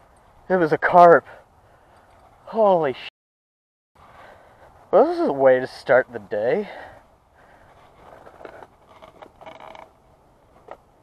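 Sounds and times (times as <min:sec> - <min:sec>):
brief creak: 0:07.7 - 0:09.9.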